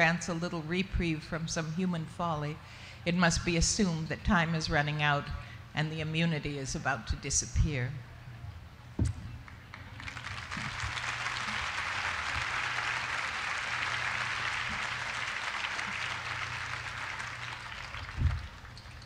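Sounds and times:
audience applauding: 9.7 - 19.0.

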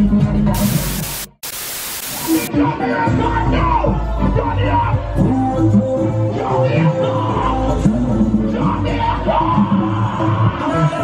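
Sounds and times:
bass-heavy party music: 0.0 - 11.0
loud tv static hiss: 0.6 - 2.5.

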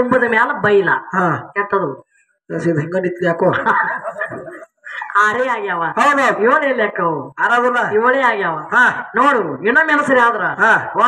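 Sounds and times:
person speaking into a microphone: 0.0 - 11.0.

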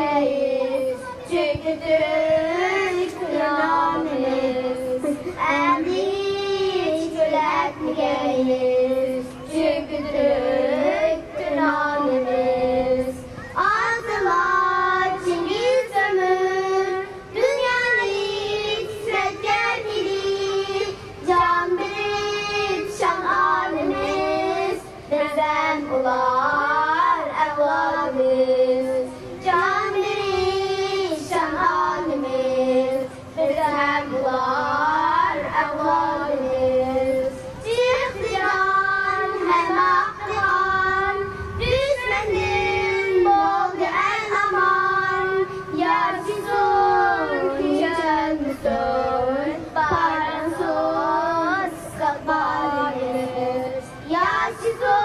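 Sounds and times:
girls singing in unison: 0.0 - 55.0.

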